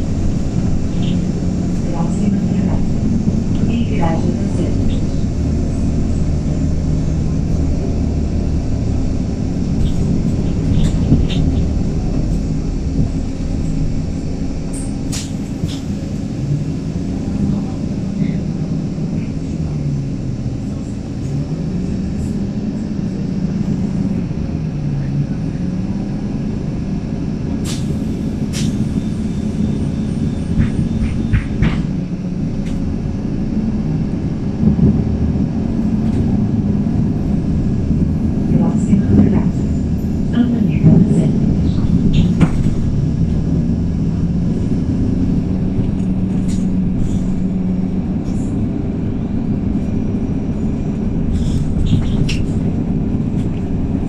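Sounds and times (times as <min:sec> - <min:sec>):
bus body rattles and knocks: 0:00.0 - 0:19.8, 0:27.2 - 0:54.0
bus engine droning: 0:00.0 - 0:54.0
road rumble: 0:00.0 - 0:54.0.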